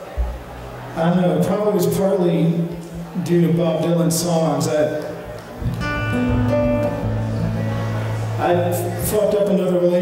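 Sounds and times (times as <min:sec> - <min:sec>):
acoustic guitar chord and notes: 0:05.6 - 0:09.2.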